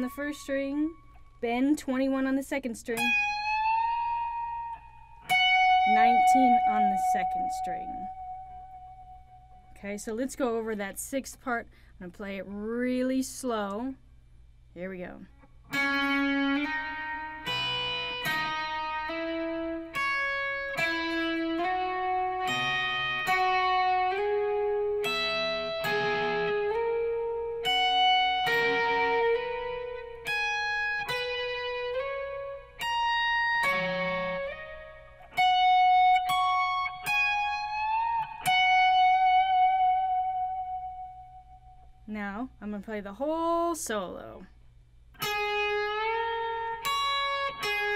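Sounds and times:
distorted electric guitar lick: 0:03.0 - 0:09.7, 0:15.7 - 0:41.7, 0:45.2 - 0:47.9.

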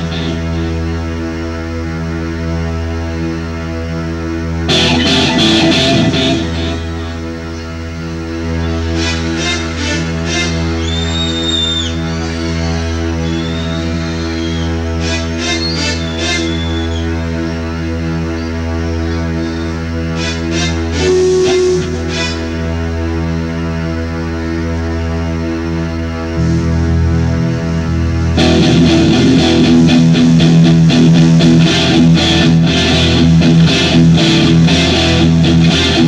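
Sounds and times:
guitar: 0:00.0 - 0:36.0
live rock band playing: 0:04.7 - 0:07.4, 0:20.2 - 0:22.6, 0:26.4 - 0:36.0.

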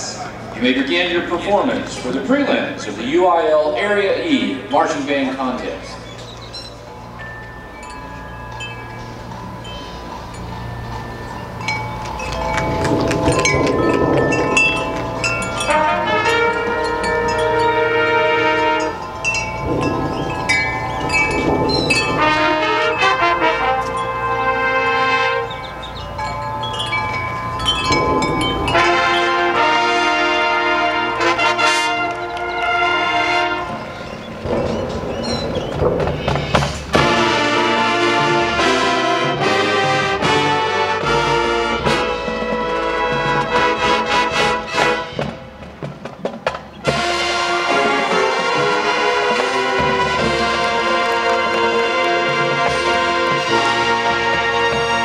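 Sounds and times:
marching band playing: 0:00.0 - 0:55.0
bell-like keyboard tones: 0:06.1 - 0:24.4
accented full-band hits: 0:12.0 - 0:55.0.

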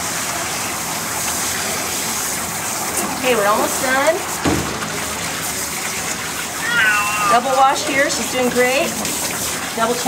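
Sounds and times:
water spraying on wet fur: 0:00.0 - 0:10.0.

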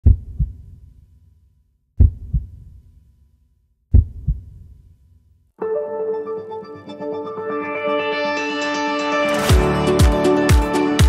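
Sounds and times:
heartbeat thumps: 0:00.0 - 0:00.7, 0:02.0 - 0:02.7, 0:03.9 - 0:04.6.

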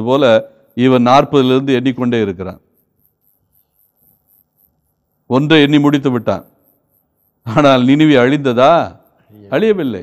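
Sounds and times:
man speaking: 0:05.3 - 0:06.5, 0:07.5 - 0:10.0.

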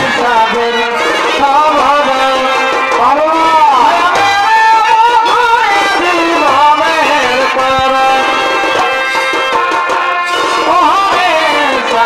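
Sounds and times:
drum beats: 0:00.0 - 0:12.0.

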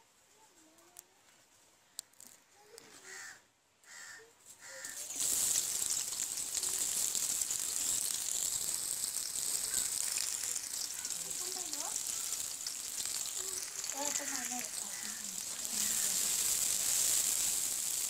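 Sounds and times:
onions sizzling in hot oil: 0:04.7 - 0:18.0.

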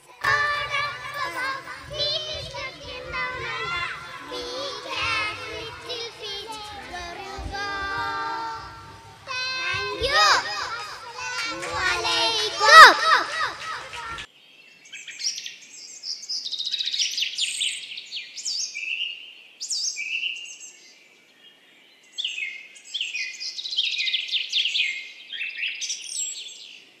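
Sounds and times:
girls singing together: 0:00.0 - 0:14.3
birdsong chirps and whistles: 0:14.4 - 0:26.9.

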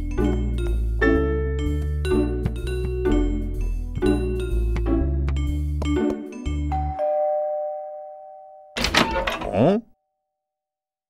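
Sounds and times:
two-tone doorbell chime: 0:06.7 - 0:08.8
door swinging open: 0:08.8 - 0:09.7.

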